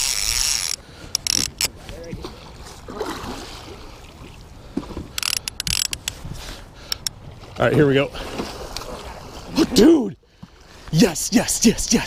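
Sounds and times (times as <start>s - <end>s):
fishing reel drag clicking: 0.0s - 1.7s, 5.2s - 6.2s.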